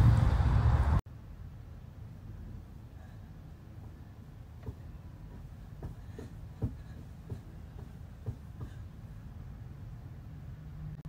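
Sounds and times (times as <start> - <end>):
low room rumble: 0.0 - 11.0
soft thumps: 4.6 - 8.9.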